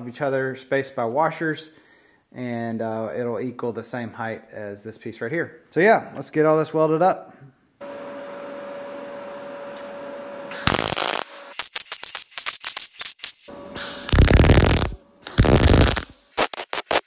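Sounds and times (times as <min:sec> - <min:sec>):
welder crackling: 0:10.6 - 0:17.0
steady hum: 0:13.5 - 0:16.1.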